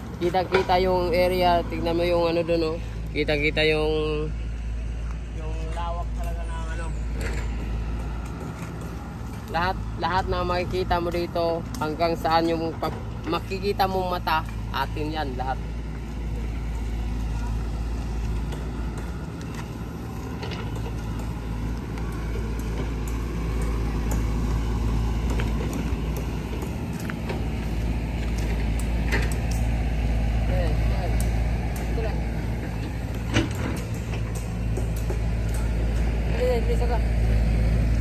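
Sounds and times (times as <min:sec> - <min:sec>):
machinery engine droning: 0:00.0 - 0:38.0
footsteps on gravel: 0:17.2 - 0:22.0.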